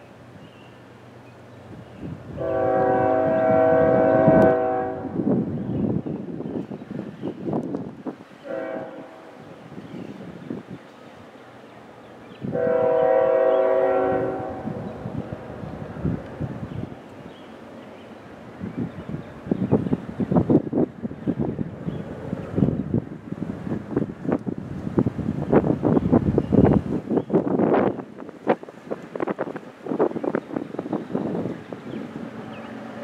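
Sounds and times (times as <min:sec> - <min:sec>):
train rumbling: 0:00.0 - 0:33.0
train air horn chord: 0:02.4 - 0:05.2, 0:08.4 - 0:09.4, 0:12.5 - 0:14.9.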